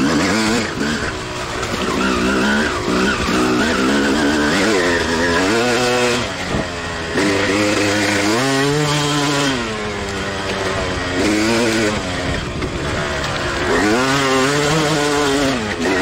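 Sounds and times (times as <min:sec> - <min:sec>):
dirt bike engine revving: 0:00.0 - 0:16.0.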